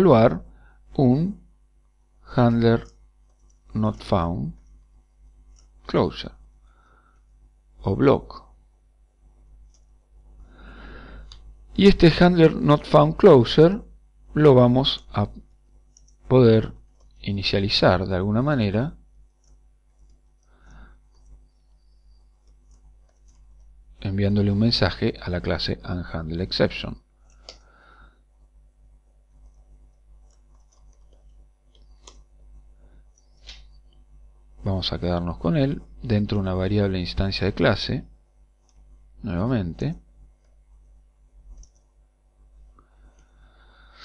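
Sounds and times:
faint keyboard typing: 2.1s - 7.5s, 9.2s - 10.5s, 14.8s - 25.2s, 26.4s - 28.2s, 29.0s - 34.8s, 37.6s - 44.0s
faint keyboard keystrokes: 15.4s - 17.2s, 19.3s - 23.7s, 29.4s - 32.3s, 41.5s - 41.9s.

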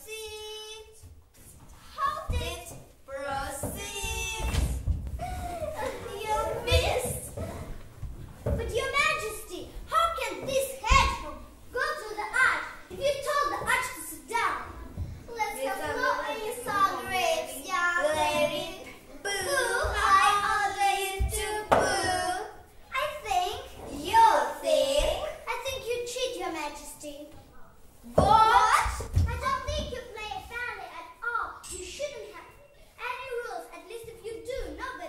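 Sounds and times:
children calling out: 3.3s - 7.7s, 8.6s - 23.1s
child singing: 15.8s - 22.6s.

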